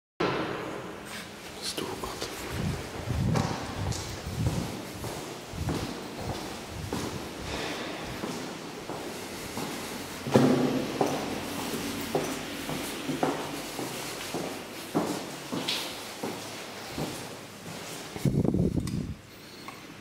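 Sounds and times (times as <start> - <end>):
footsteps on hard floor: 2.4 - 18.4.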